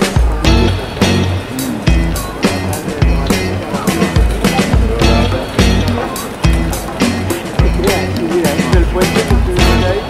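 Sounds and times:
music with heavy bass beat: 0:00.0 - 0:10.0.

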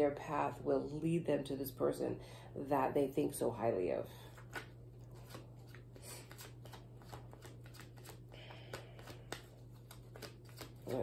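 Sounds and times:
cards being shuffled by hand: 0:04.3 - 0:11.0.

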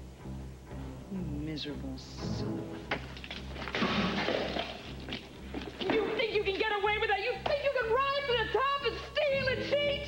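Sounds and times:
glass breaking with a crash: 0:03.6 - 0:04.9.

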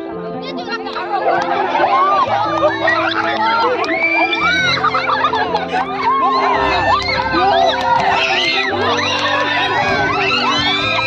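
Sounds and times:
background music with held notes: 0:00.0 - 0:11.0
crowd shouting and cheering: 0:00.0 - 0:11.0.

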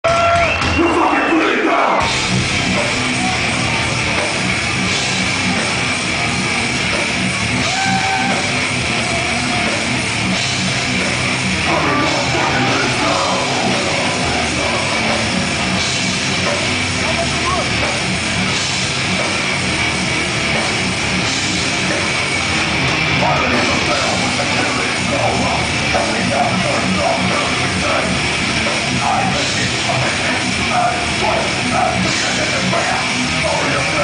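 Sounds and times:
crowd cheering and shouting: 0:00.0 - 0:34.0
live metal band playing: 0:00.0 - 0:34.0
shouted vocals: 0:07.5 - 0:10.0, 0:11.6 - 0:15.6
held shouts: 0:07.6 - 0:09.9.

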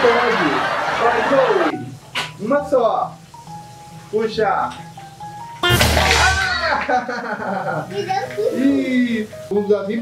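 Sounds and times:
music: 0:01.2 - 0:10.0
loud laughing: 0:05.6 - 0:07.9.

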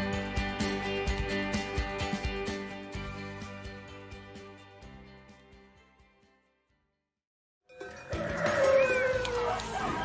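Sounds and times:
animal call: 0:07.8 - 0:10.0.

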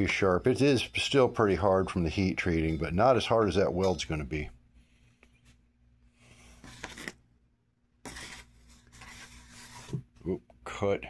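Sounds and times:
rubbing and scraping handling noise: 0:01.6 - 0:07.3, 0:08.0 - 0:10.4.

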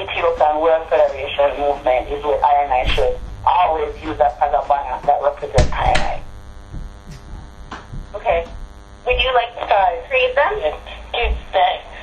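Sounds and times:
buzzing electrical hum: 0:00.0 - 0:12.0.

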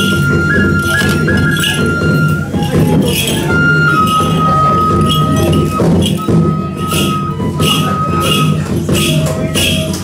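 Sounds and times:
bamboo flute high note: 0:00.0 - 0:10.0
bells jingling: 0:00.0 - 0:10.0
low drumming: 0:00.0 - 0:10.0.

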